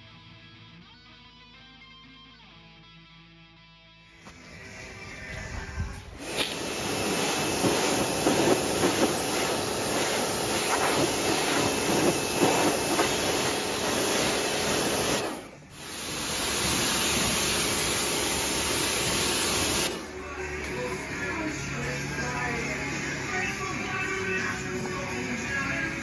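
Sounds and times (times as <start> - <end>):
pressure washer spraying water: 6.2 - 20.7.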